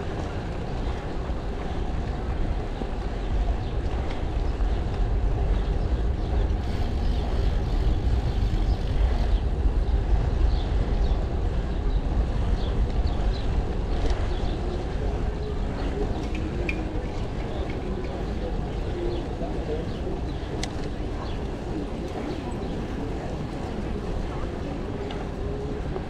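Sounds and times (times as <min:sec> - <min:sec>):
wind and road rumble: 0:00.0 - 0:26.0.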